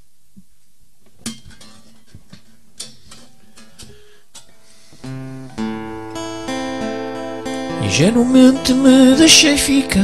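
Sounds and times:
fingers tapping guitar: 5.0s - 10.0s
guitar strings ringing faintly: 5.0s - 10.0s.

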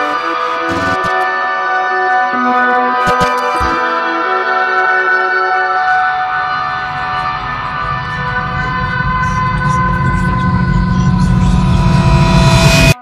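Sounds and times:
low rumbling noise: 6.2s - 13.0s.

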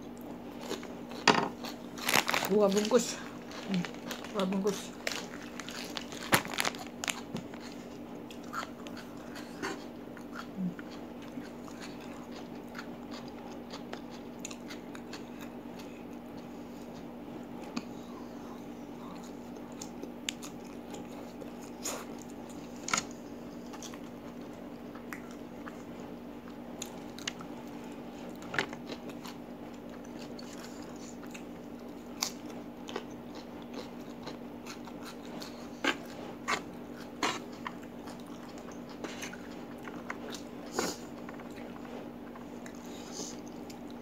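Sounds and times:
steady low hum: 0.0s - 44.0s
crunchy bites: 0.6s - 15.5s
chewing and slurping noodles: 3.2s - 18.0s, 19.0s - 44.0s.

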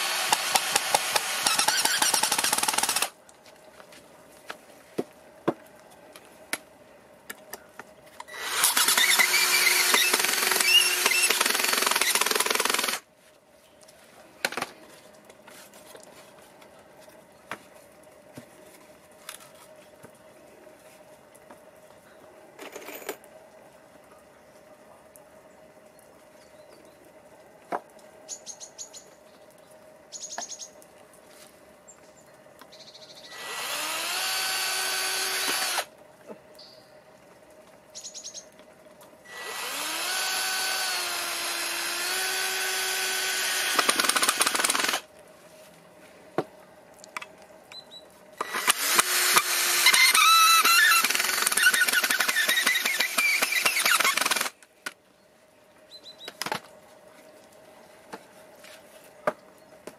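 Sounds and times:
cordless drill driving screws: 0.0s - 3.1s, 8.3s - 13.0s, 33.3s - 35.9s, 39.3s - 45.0s, 48.4s - 54.6s
drill rapid clicking: 0.0s - 3.1s, 8.3s - 13.0s, 33.4s - 35.9s, 39.3s - 45.0s, 48.4s - 54.6s.

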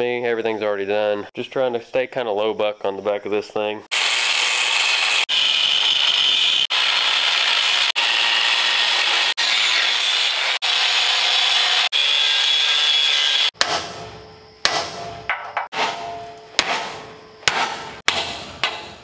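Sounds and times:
angle grinder cutting steel: 3.9s - 13.6s
hammer strike on metal: 13.6s - 19.0s.

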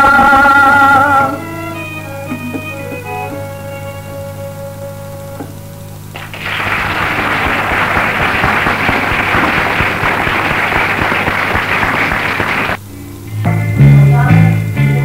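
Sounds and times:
music: 0.0s - 6.1s, 12.9s - 15.0s
low steady hum: 0.0s - 15.0s
audience applauding: 6.1s - 12.8s.

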